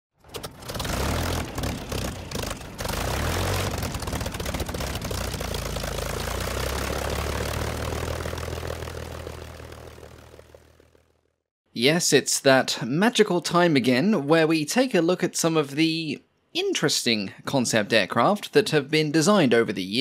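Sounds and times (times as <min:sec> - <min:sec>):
aircraft engine starting and running: 0:00.2 - 0:11.4.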